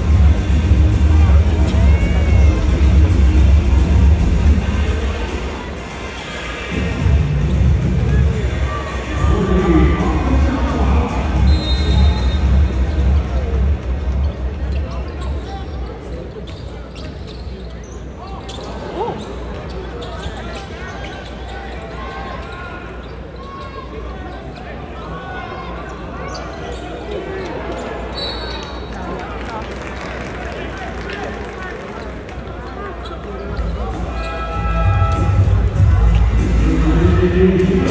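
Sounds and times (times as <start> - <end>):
bass-heavy arena music: 0.0 - 5.9, 6.6 - 15.2, 33.6 - 37.9
crowd chatter: 0.0 - 37.9.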